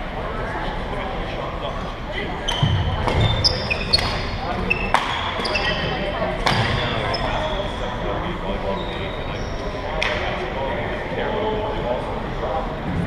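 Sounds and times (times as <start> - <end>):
shoes squeaking on floor: 2.4 - 8.1, 8.7 - 9.8.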